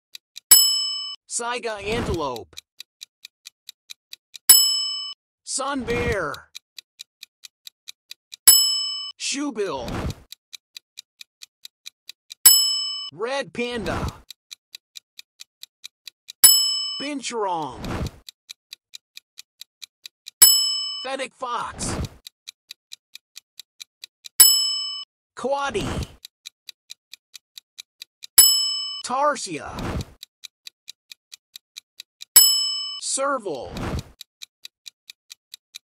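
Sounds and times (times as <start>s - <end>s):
clock ticking: 0.1s - 35.9s
bell ding: 0.5s - 1.2s, 12.5s - 13.1s.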